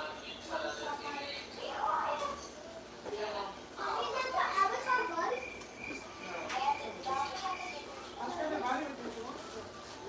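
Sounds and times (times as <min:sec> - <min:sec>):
children talking and playing: 0:00.0 - 0:10.0.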